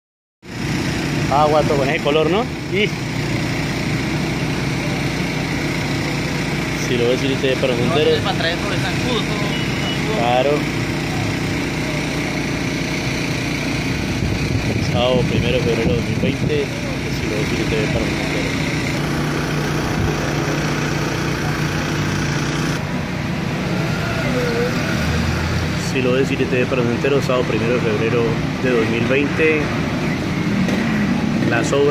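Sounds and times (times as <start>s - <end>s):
street traffic: 0.4s - 31.9s
motor hum: 0.5s - 23.7s
low engine-like drone: 0.5s - 31.9s.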